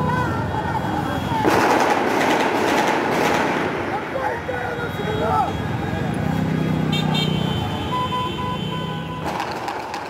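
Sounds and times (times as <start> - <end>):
street voices: 0.0 - 10.0
automatic gunfire burst: 1.5 - 3.7.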